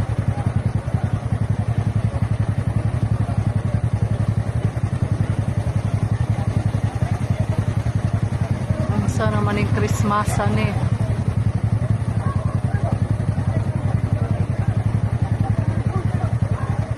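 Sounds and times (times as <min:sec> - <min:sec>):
motorcycle engine idling: 0:00.0 - 0:16.9.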